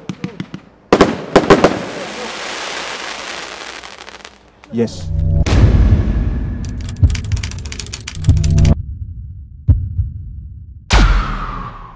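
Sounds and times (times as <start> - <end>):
deep rumbling boom: 4.9 - 7.4
sharp bang: 5.2 - 6.6.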